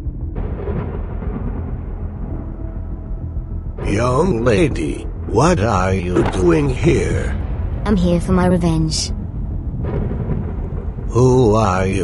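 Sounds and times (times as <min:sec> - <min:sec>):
deep rumbling drone: 0:00.0 - 0:12.0.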